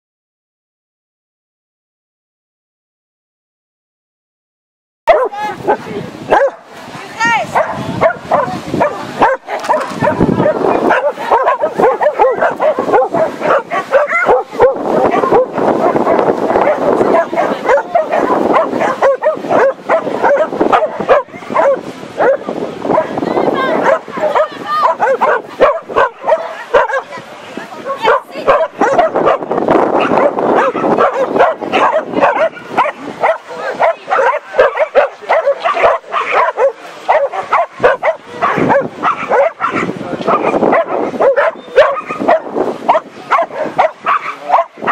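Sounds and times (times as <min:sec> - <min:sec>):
dog barking and yipping: 0:05.1 - 0:06.7, 0:07.5 - 0:27.2, 0:27.9 - 0:44.9.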